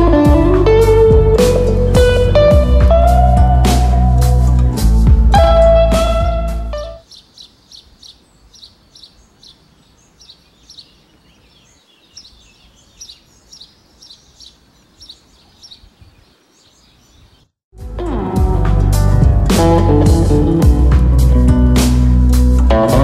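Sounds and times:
guitar background music: 0.0s - 7.0s, 17.7s - 23.0s
faint birdsong chirps: 6.7s - 17.6s.

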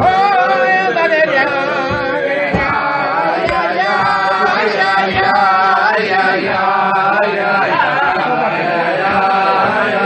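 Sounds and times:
men singing wordless melody: 0.0s - 10.0s.

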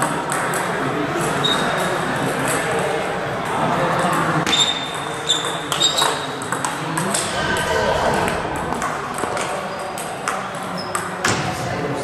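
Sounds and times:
background voices: 7.0s - 10.6s.

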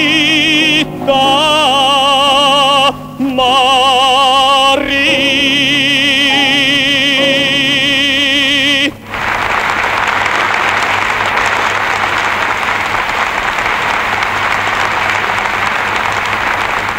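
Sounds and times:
male baritone singing: 0.0s - 9.2s
audience applause: 9.0s - 16.9s.

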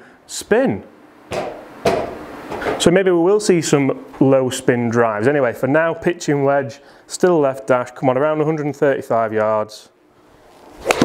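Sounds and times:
sharp knocks: 1.3s - 2.8s.

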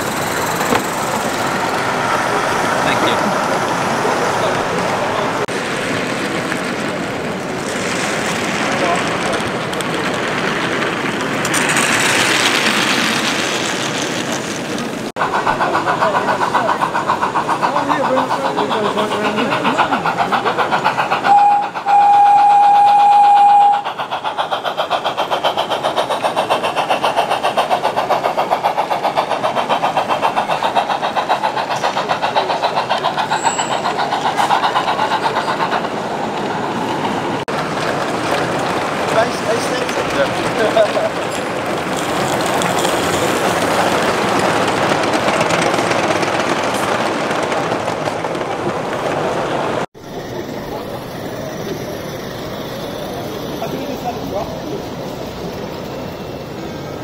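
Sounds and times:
crowd chattering: 0.0s - 11.1s, 14.8s - 21.9s, 23.8s - 45.9s, 46.7s - 57.0s
model steam locomotive chuffing: 0.0s - 57.0s
steam whistle blast: 21.3s - 23.8s.

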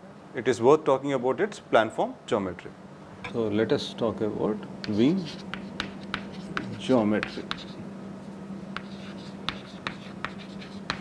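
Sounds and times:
chalk scratching: 4.8s - 7.8s, 8.8s - 11.0s
chalk tapping on chalkboard: 4.8s - 7.8s, 8.7s - 11.0s.

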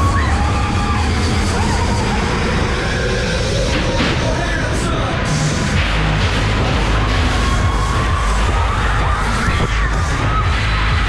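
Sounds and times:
passengers shouting and screaming: 0.0s - 5.6s, 6.4s - 11.0s
loud ride music with heavy bass: 0.0s - 11.0s.

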